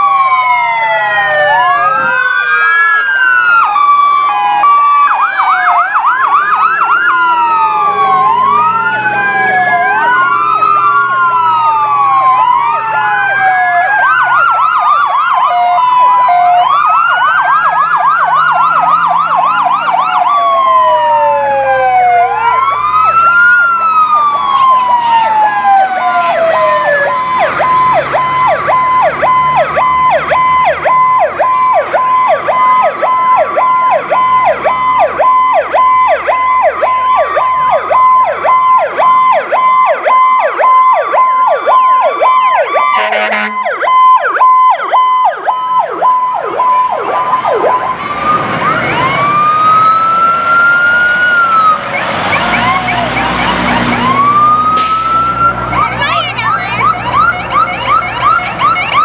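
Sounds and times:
fire truck sirens wailing: 0.0 - 59.0
steady siren tone: 0.0 - 59.0
loud horn blast: 42.9 - 43.8.

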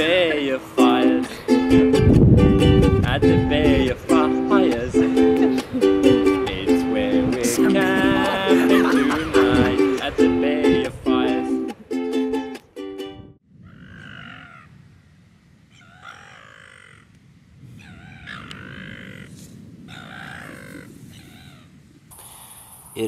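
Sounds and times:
ukulele tune: 0.0 - 13.4.

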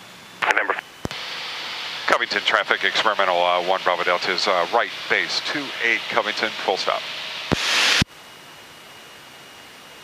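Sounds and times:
intercom line hiss: 0.4 - 8.0.

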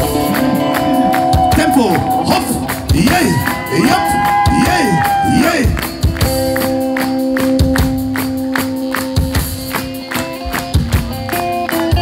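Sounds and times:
rock band playing: 0.0 - 12.0
steady drum beat: 0.0 - 12.0.

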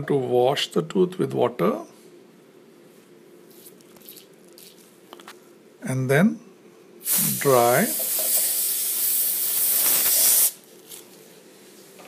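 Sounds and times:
air syringe hissing: 7.0 - 11.0.

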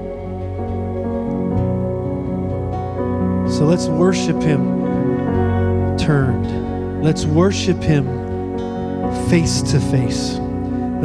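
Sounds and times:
band playing soft chords: 0.0 - 11.0.

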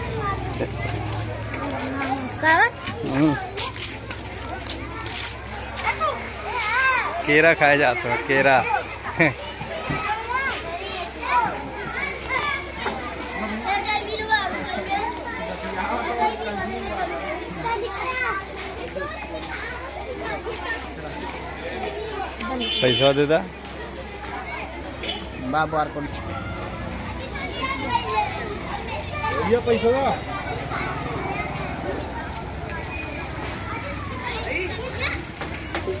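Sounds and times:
children chattering: 0.0 - 36.0
street background noise: 0.0 - 36.0.

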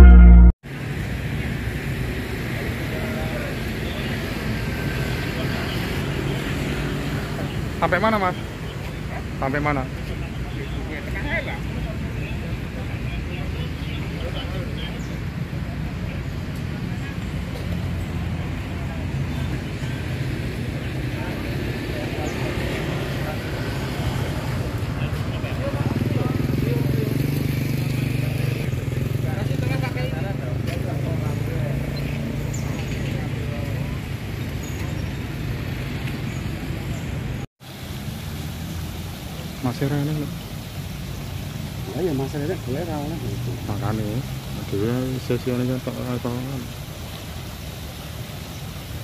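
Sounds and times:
road traffic: 0.7 - 49.0.

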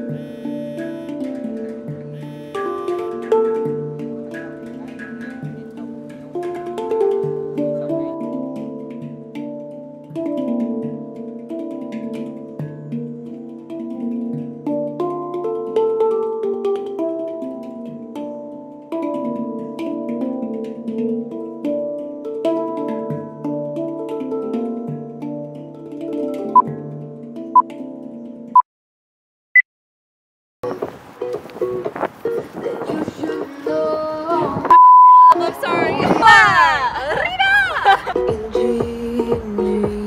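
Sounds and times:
handpan melody: 0.0 - 28.6, 30.6 - 34.7, 35.4 - 40.0.

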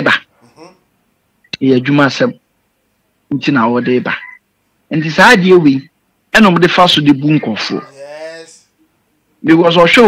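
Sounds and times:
faint murmur: 0.1 - 0.9, 7.6 - 9.2
man's pitched vocal sounds: 0.4 - 0.8, 7.8 - 8.6.

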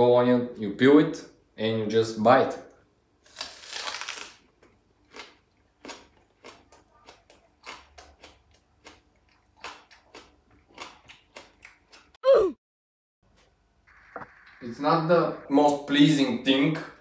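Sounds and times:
person biting raw onion: 3.2 - 12.4
chewing with crunches: 3.8 - 12.2.

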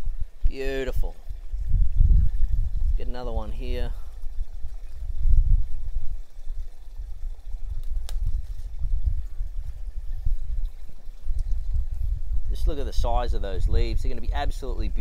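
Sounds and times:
wind buffeting microphone: 0.0 - 15.0
leaf stalk snapping: 7.8 - 8.4.

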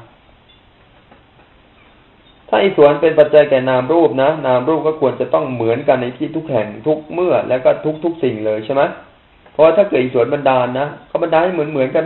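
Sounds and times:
faint recording hiss: 0.0 - 12.0.

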